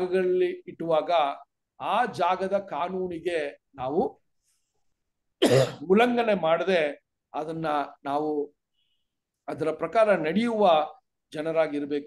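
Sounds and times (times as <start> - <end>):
man coughing: 5.4 - 5.8.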